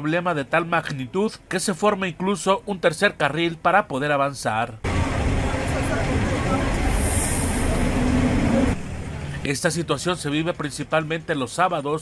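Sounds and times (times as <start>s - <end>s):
traffic rumble on jammed road: 4.8s - 12.0s.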